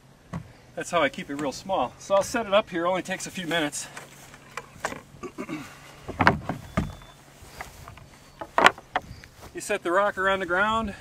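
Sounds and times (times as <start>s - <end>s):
wooden parts knocking and thudding: 0.3s - 0.5s, 6.0s - 9.2s.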